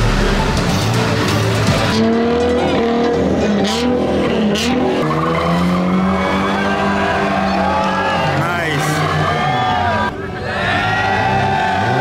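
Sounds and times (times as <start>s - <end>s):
car engine revving: 0.0s - 10.2s.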